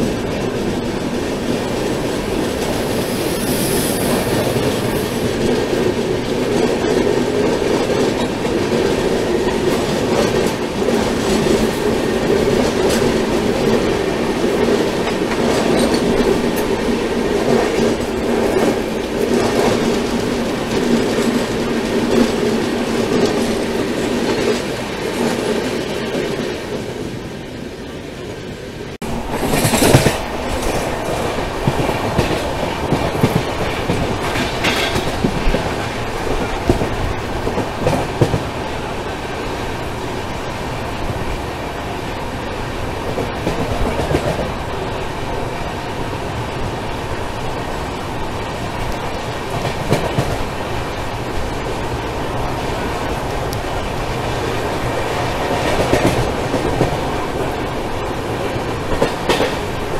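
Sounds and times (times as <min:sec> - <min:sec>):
train rumble and wheel clatter: 0:00.0 - 0:59.9
sudden loud rush: 0:01.9 - 0:05.5.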